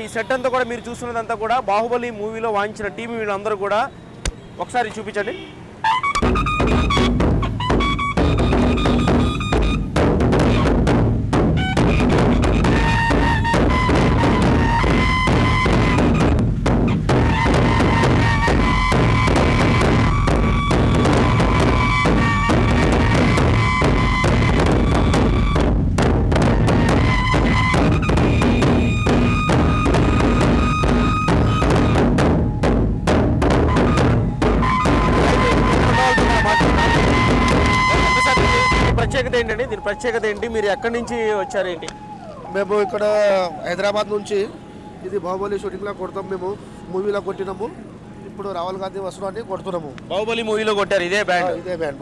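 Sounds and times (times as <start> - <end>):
large drums beaten fast: 6.2 - 41.4
long held high notes: 17.2 - 25.6, 26.5 - 48.4.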